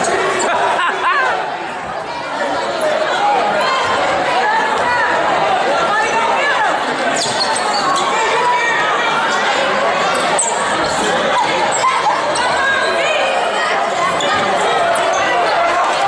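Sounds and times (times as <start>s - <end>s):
crowd chatter and shouting: 0.0s - 16.0s.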